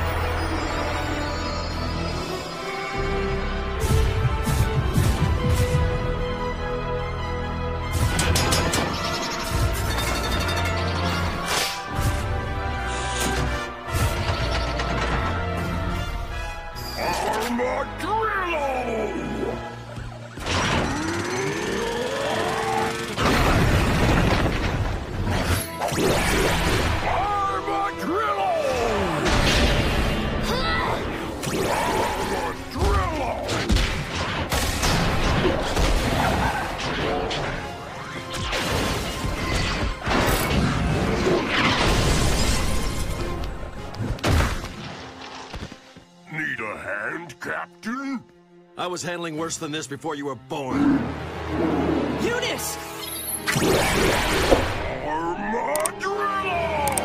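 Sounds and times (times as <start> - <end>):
dramatic action music: 0.0 - 57.0
whine rising in pitch: 20.8 - 23.1
crashing and smashing effects: 23.2 - 27.0.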